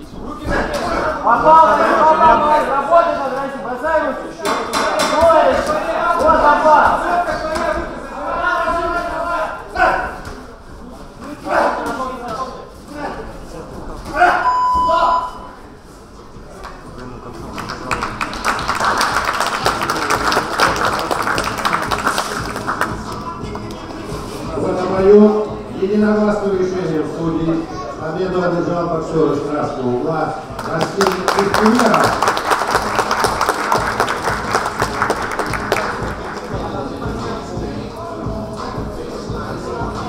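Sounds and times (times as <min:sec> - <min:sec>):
spectators applauding: 0:17.4 - 0:24.0, 0:30.6 - 0:36.9.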